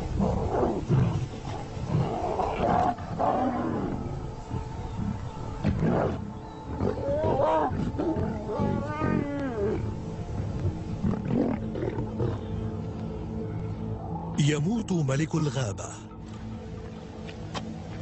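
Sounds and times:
background music drone: 0.0s - 18.0s
lions growling: 0.1s - 4.3s, 4.9s - 12.6s.

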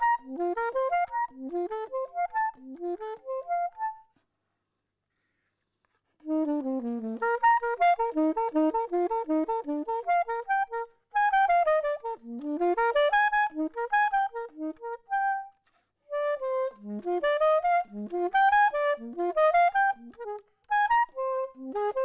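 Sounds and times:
soprano saxophone arpeggio runs: 0.0s - 4.1s, 6.2s - 22.0s.

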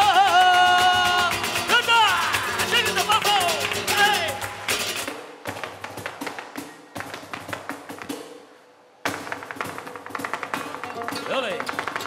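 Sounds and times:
guitar accompaniment: 0.0s - 5.1s, 10.6s - 12.0s
flamenco footwork taps: 0.0s - 8.3s, 9.1s - 12.0s.

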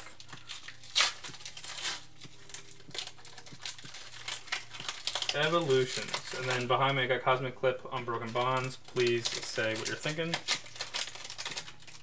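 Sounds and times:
foil wrapper crinkling: 0.0s - 12.0s.

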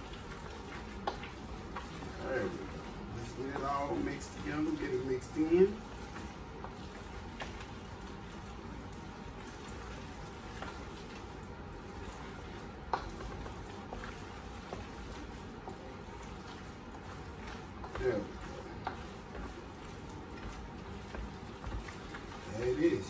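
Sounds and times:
spoon stirring thick wet mixture: 0.0s - 23.0s.

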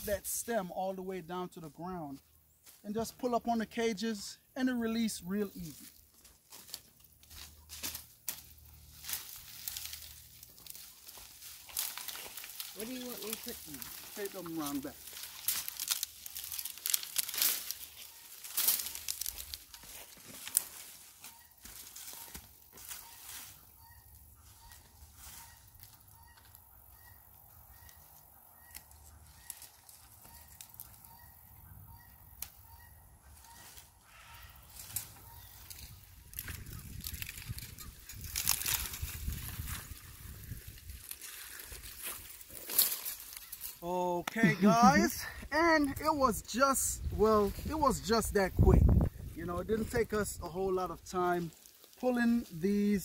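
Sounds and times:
dry vines crackling and rustling: 0.0s - 53.0s
bird calling: 11.8s - 38.2s, 42.5s - 47.1s.

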